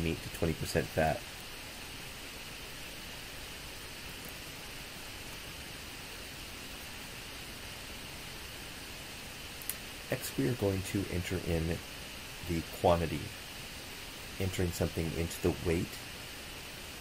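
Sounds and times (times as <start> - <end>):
microphone hiss: 0.0 - 17.0
faint click: 9.6 - 9.8.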